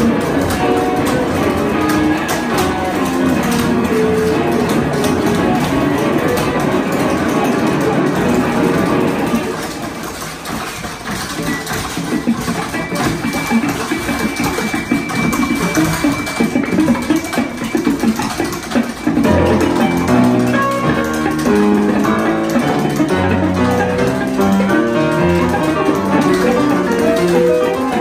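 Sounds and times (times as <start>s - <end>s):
electric guitar notes: 0.0s - 9.6s.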